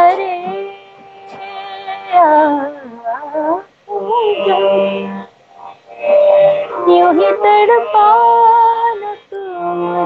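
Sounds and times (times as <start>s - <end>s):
woman singing through video call: 0.0s - 5.3s, 6.8s - 10.0s.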